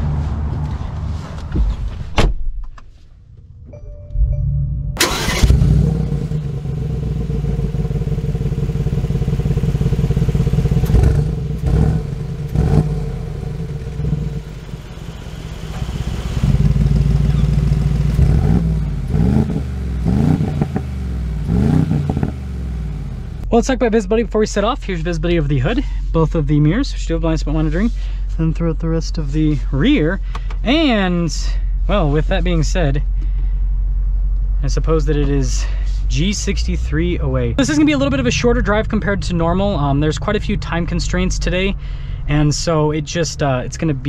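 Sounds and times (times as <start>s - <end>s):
thump: 1.5s - 2.8s
car engine starting and revving: 4.3s - 23.5s, 37.6s - 41.6s.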